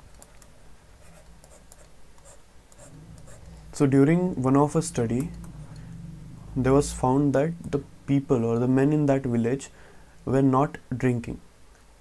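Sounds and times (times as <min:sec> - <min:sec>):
faint low hum: 0:00.0 - 0:12.0
stylus scratching on tablet: 0:00.2 - 0:03.5.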